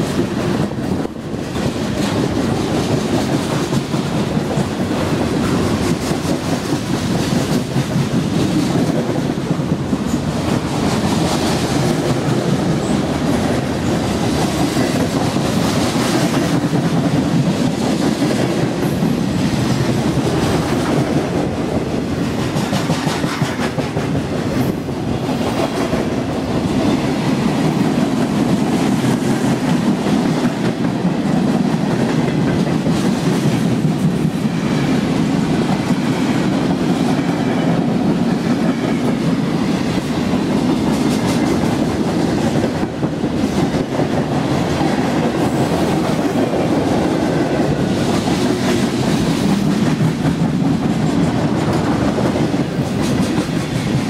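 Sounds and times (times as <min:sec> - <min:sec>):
freight train wheels rumbling: 0:00.0 - 0:54.0.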